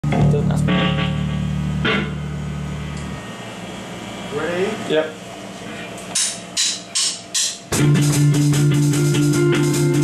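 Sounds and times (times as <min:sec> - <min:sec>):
electric bass low note: 0:00.0 - 0:04.6.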